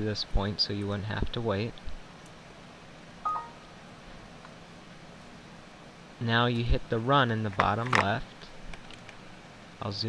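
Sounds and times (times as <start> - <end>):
faint steady hiss: 0.0 - 10.0
short electronic beep: 3.3 - 3.6.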